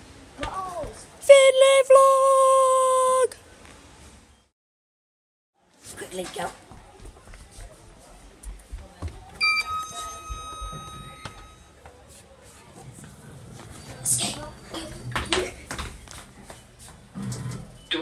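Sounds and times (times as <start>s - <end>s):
children's hushed voices: 6.6s - 16.8s
lift chime ding: 9.4s - 11.8s
children laughing: 14.6s - 16.0s.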